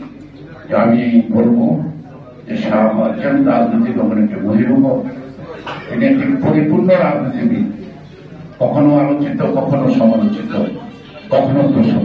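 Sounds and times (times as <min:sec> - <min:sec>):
man speaking into a microphone: 0:00.0 - 0:12.0.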